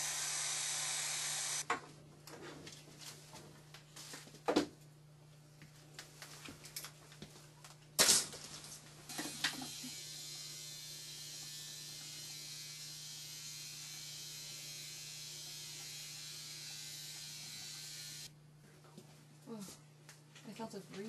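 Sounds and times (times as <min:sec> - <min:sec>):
small electric motor hissing: 0:00.0 - 0:01.6.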